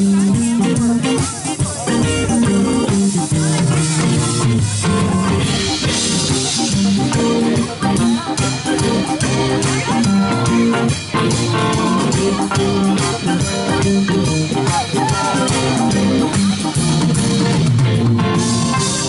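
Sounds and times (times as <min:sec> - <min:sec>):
drum kit: 0:00.0 - 0:19.0
electric bass: 0:00.0 - 0:19.0
electric guitar: 0:00.0 - 0:19.0
keyboards: 0:00.0 - 0:19.0.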